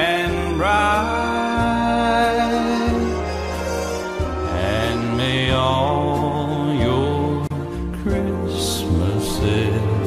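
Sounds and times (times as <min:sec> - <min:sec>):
christmas music: 0:00.0 - 0:10.0
steady bass line: 0:00.0 - 0:10.0.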